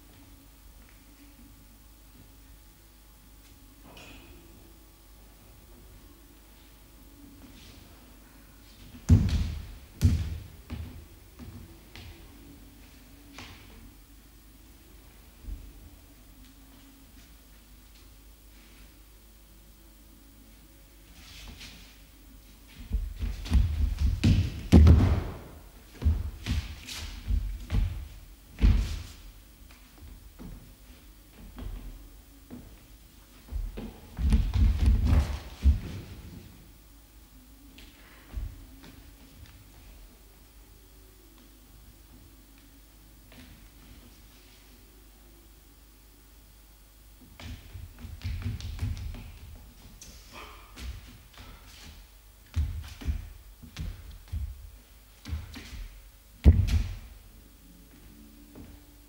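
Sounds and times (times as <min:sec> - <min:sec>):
shoes tapping on wooden floor: 0:22.8 - 0:30.7, 0:33.4 - 0:36.5, 0:47.2 - 0:50.2, 0:50.8 - 0:57.1
thuds on wooden floor: 0:22.9 - 0:29.1, 0:55.2 - 0:57.1.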